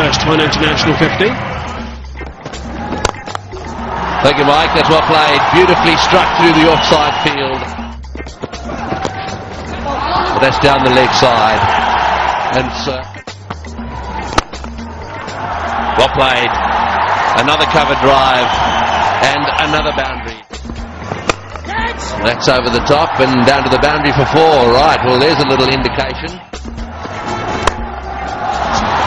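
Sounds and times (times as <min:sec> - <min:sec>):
cricket bat striking ball: 0:02.2 - 0:03.5, 0:14.2 - 0:14.8, 0:21.1 - 0:21.7, 0:27.5 - 0:27.9
stadium crowd noise: 0:03.7 - 0:13.1, 0:13.9 - 0:20.5, 0:21.1 - 0:29.0
music with steady bass line: 0:19.9 - 0:22.2, 0:25.8 - 0:29.0.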